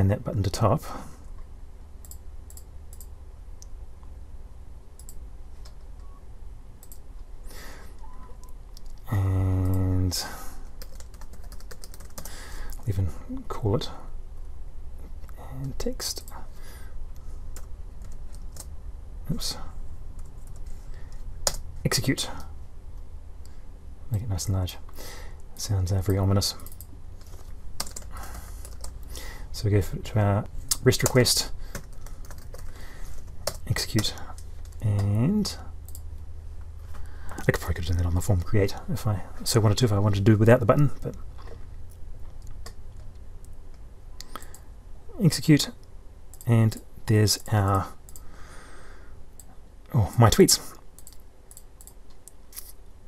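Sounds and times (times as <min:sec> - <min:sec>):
steady low hum: 0:00.0 - 0:53.0
computer mouse clicking: 0:02.0 - 0:03.7, 0:05.0 - 0:05.9, 0:06.8 - 0:07.1, 0:26.6 - 0:29.0, 0:51.0 - 0:52.7
computer keyboard typing: 0:10.8 - 0:12.4, 0:26.6 - 0:29.0, 0:31.0 - 0:35.2, 0:51.0 - 0:52.4.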